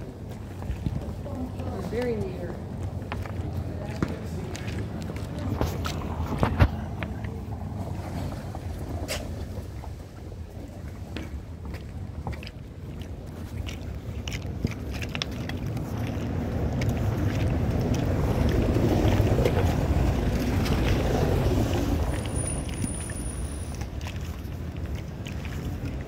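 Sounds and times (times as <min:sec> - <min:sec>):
low outdoor rumble: 0:00.0 - 0:26.0
footsteps clicking: 0:00.2 - 0:07.3.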